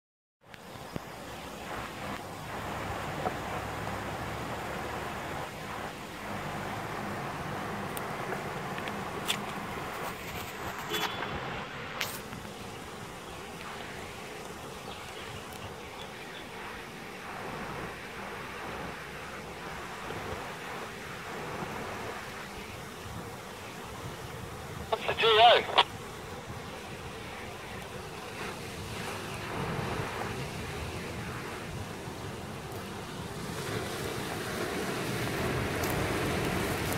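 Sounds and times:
river running over rocks: 0.5s - 36.9s.

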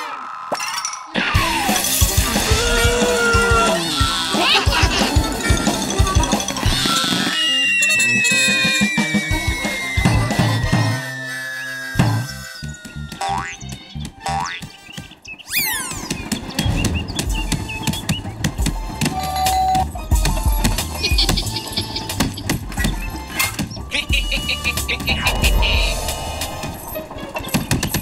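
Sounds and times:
falling whistle tone: 7.2s - 13.3s
springy boing sounds: 13.2s - 13.6s
comic music with percussive hits: 16.0s - 28.0s.

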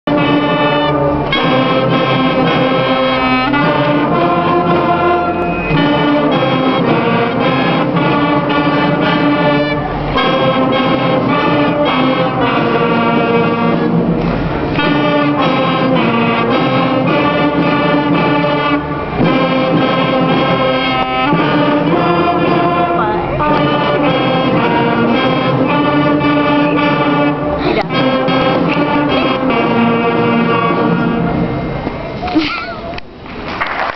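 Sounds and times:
concert band playing: 0.0s - 32.2s.

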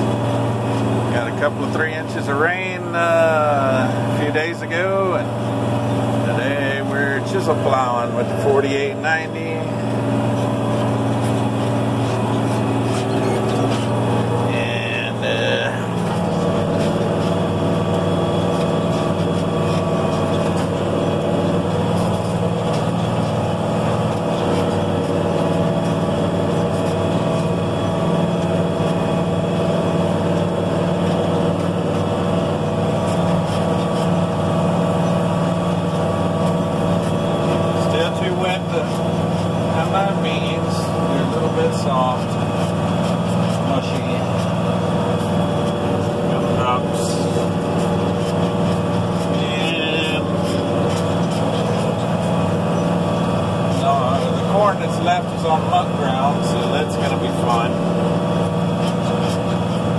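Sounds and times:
tractor diesel engine under load: 0.0s - 59.9s.

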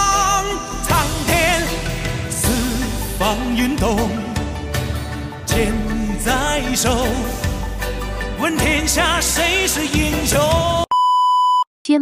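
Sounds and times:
music with singing voice: 0.0s - 10.9s
electronic beep: 10.9s - 11.7s.

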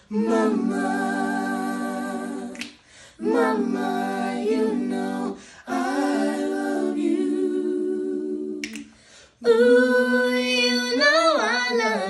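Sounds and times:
boys singing a cappella: 0.0s - 12.0s.

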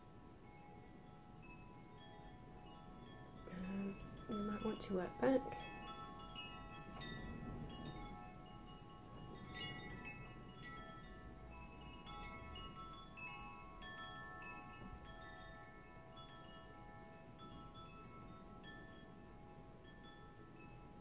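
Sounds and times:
soft chimes ringing: 0.0s - 21.0s.

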